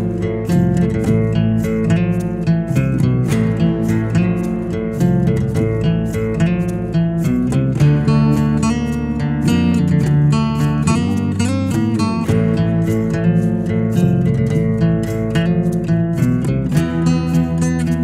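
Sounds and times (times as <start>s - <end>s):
bluesy guitar playing: 0.0s - 18.0s.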